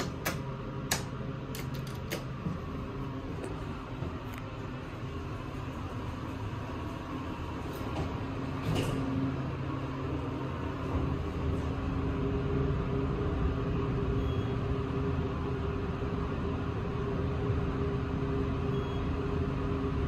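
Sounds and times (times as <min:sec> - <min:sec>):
elevator machine hum: 0:00.0 - 0:20.0
low rumble inside elevator cab: 0:00.0 - 0:20.0.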